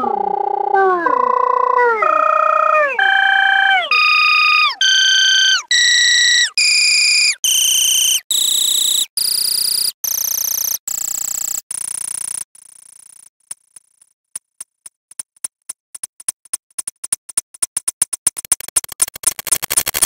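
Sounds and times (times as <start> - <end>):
rising computer tones: 0.0 - 9.1.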